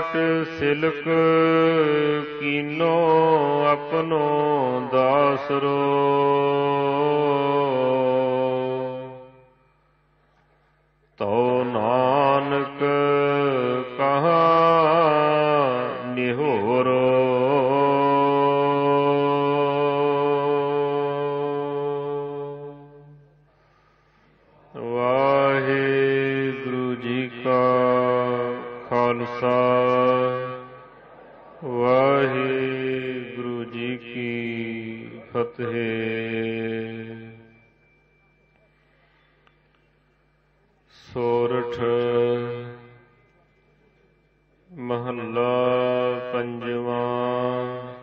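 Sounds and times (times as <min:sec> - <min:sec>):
man chanting: 0:00.0 - 0:09.6, 0:11.1 - 0:23.4, 0:24.4 - 0:39.1, 0:40.8 - 0:44.0, 0:44.6 - 0:48.0.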